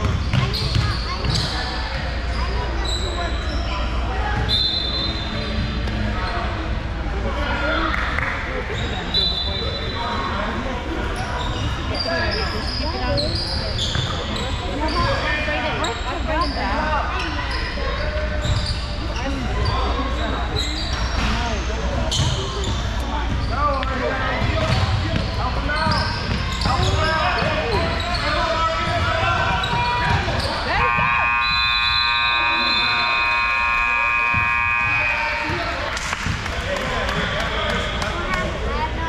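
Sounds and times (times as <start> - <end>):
basketball bouncing: 0.0 - 1.5, 34.1 - 36.6
sneaker squeaks: 0.0 - 6.6, 11.0 - 36.4
echoing indistinct voices: 22.5 - 39.0.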